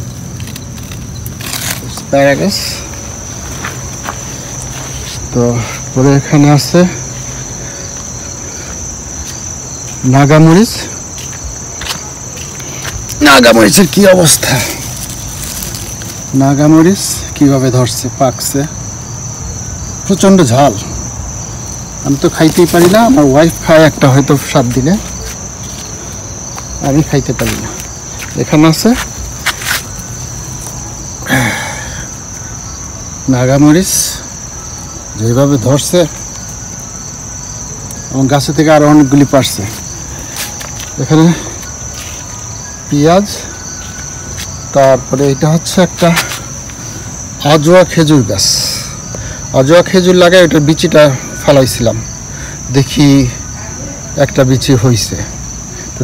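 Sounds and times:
high-pitched insect song: 0.0s - 56.0s
man speaking: 1.8s - 3.0s, 5.2s - 7.2s, 10.0s - 11.0s, 13.1s - 14.9s, 16.3s - 18.8s, 20.0s - 21.0s, 22.0s - 25.3s, 26.8s - 29.2s, 33.2s - 34.4s, 35.2s - 36.2s, 38.1s - 39.9s, 40.9s - 41.7s, 44.7s - 46.5s, 47.4s - 52.1s, 52.7s - 56.0s.

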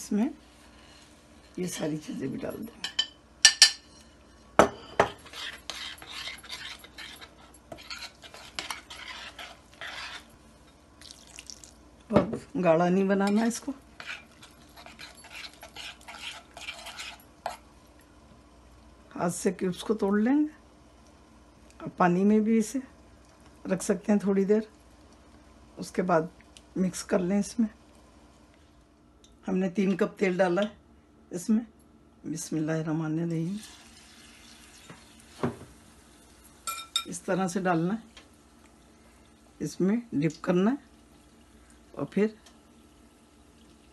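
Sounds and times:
food frying in oil: 0.0s - 28.5s, 33.4s - 43.9s
kitchenware clinking: 2.4s - 5.4s, 36.6s - 37.2s
spoon stirring batter in glass bowl: 2.5s - 10.4s, 13.2s - 17.6s
glass bowl clinking: 36.6s - 37.1s.

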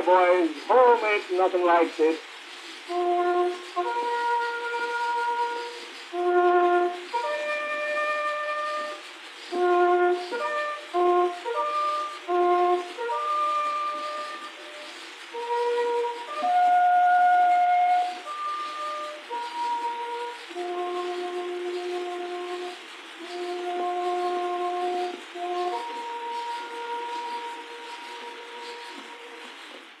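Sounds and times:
brass horn playing a call: 0.0s - 2.3s, 2.9s - 29.8s
record surface hiss: 0.0s - 30.0s.

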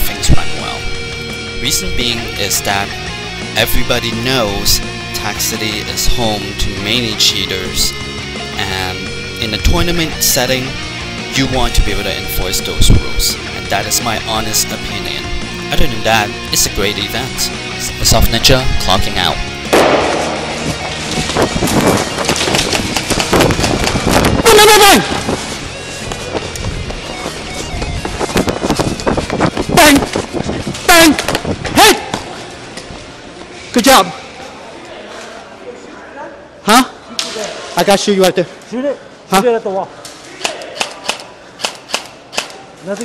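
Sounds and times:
airsoft guns firing: 19.7s - 20.5s
player shouting: 24.4s - 25.2s, 30.9s - 32.2s.

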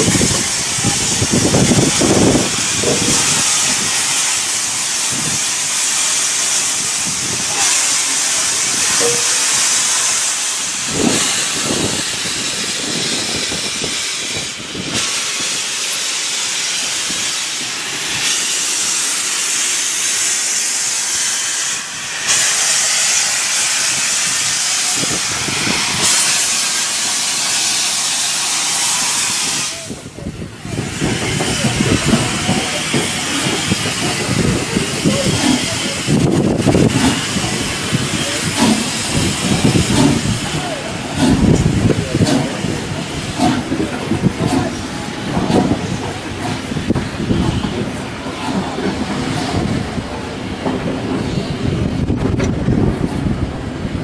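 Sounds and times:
carriages rolling on rails: 0.0s - 54.0s
steam locomotive hissing: 0.0s - 54.0s.

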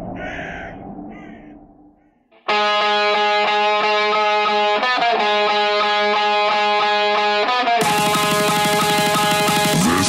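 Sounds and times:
crow cawing: 0.0s - 2.3s
low rumbling drone: 0.0s - 2.3s.

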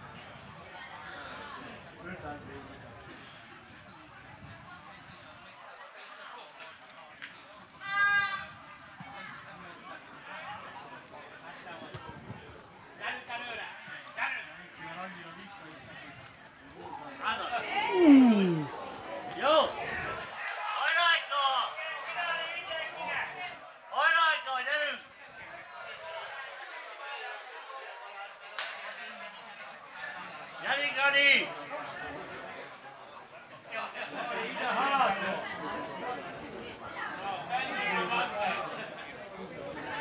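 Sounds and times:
open-air ambience: 16.7s - 19.8s
faint men's voices calling: 17.6s - 19.0s
person shouting: 17.8s - 18.8s.

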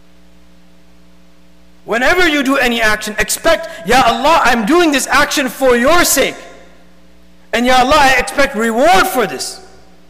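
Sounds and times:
electrical mains hum: 0.0s - 10.0s
person speaking: 1.8s - 6.8s, 7.5s - 9.9s.

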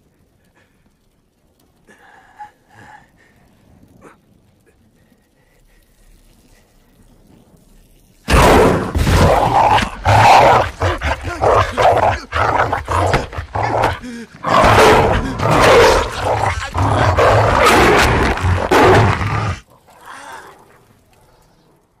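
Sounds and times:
wolf snarling and growling: 8.3s - 21.4s.

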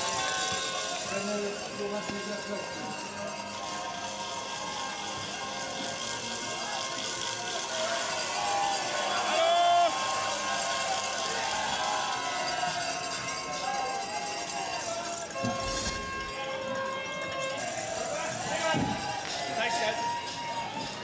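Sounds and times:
loud held call from crowd: 0.0s - 21.0s
spectator noise: 13.9s - 19.4s.

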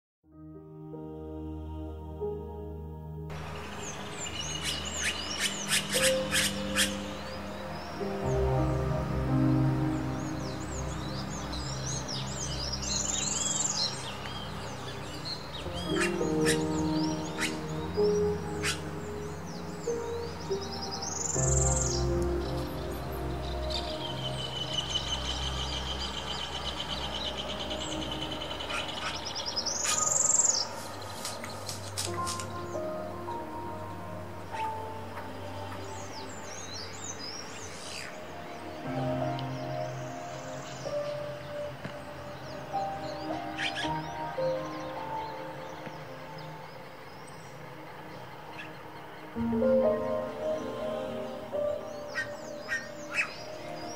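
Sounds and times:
soft background music: 0.3s - 53.9s
high downslurred bird chirps: 3.3s - 32.9s, 34.5s - 53.9s
birds calling sharp notes: 3.3s - 53.9s
bird trilling: 3.6s - 7.3s, 15.7s - 18.9s, 52.0s - 53.6s.

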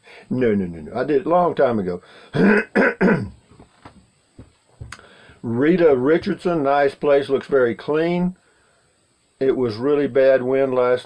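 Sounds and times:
man clearing his throat: 2.3s - 3.4s.

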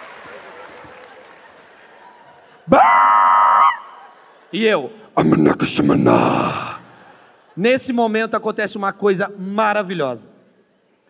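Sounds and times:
high-pitched scream: 2.7s - 4.0s.

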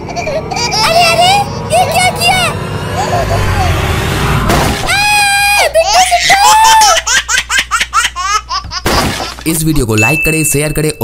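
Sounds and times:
steady low rumble: 0.0s - 4.9s
high-pitched cartoon voices: 0.5s - 4.0s, 4.9s - 7.1s.

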